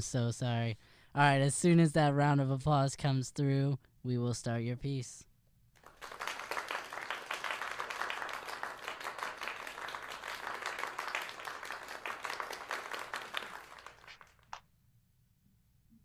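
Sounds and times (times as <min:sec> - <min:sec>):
applause: 0:05.8 - 0:14.6
lone hand clap: 0:05.8 - 0:14.6.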